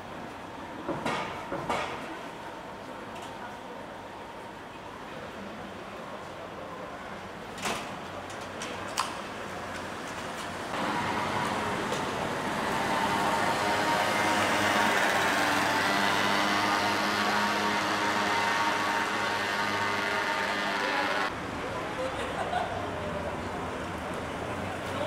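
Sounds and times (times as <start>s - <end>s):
vehicle engine running: 10.8s - 21.3s.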